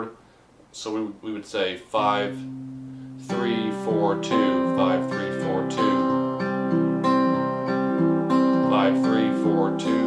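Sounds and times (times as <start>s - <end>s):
fingerpicked acoustic guitar: 2.2s - 10.0s.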